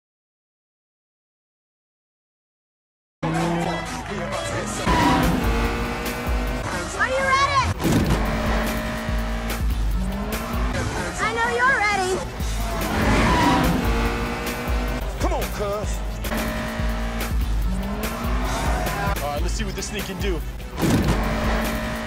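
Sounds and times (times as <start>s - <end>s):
music with heavy bass beat: 3.2s - 10.8s, 12.2s - 22.0s.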